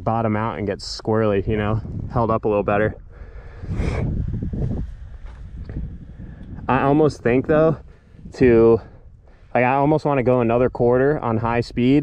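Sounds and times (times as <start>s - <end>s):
wind buffeting microphone: 0.0s - 12.0s
quick breath or sniff: 3.1s - 6.4s.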